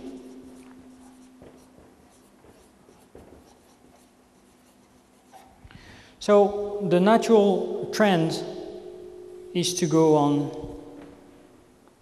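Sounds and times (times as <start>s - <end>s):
marker scratching on paper: 0.2s - 5.6s.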